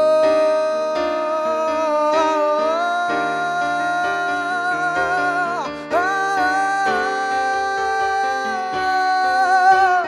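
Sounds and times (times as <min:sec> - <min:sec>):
man singing a high note: 0:00.0 - 0:10.0
piano chords: 0:00.0 - 0:10.0.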